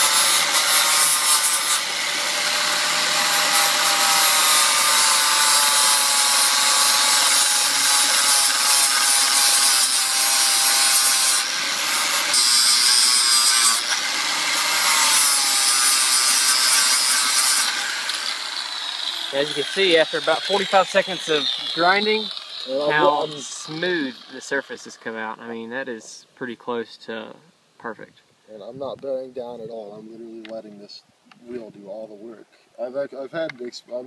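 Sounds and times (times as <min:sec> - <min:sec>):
angle grinder grinding metal: 0:00.0 - 0:25.2.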